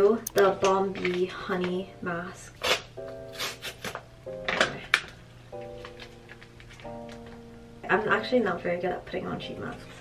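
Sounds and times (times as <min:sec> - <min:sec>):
soft background music chords: 0:00.0 - 0:10.0.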